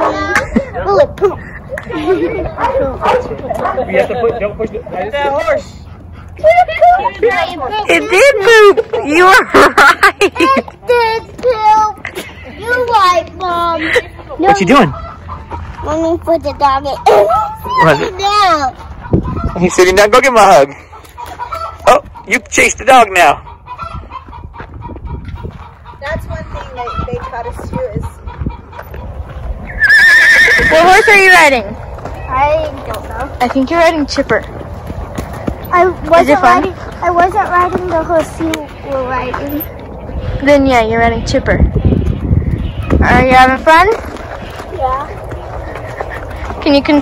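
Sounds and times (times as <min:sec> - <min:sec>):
child laughing: 0:00.0 - 0:03.8, 0:06.4 - 0:14.4
chickens clucking: 0:13.8 - 0:29.8, 0:31.8 - 0:40.5, 0:41.3 - 0:47.0
people talking: 0:43.0 - 0:44.0, 0:46.5 - 0:47.0.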